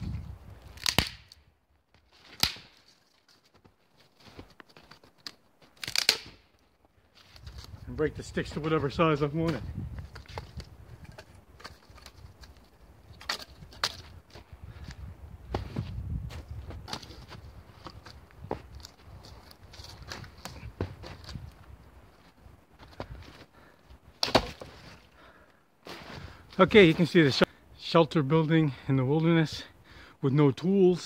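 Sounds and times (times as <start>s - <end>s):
rustling of branches: 0.0s - 27.5s
dry branches snapping: 0.6s - 3.6s, 4.3s - 6.6s, 10.0s - 14.4s, 16.8s - 21.6s, 24.2s - 24.7s.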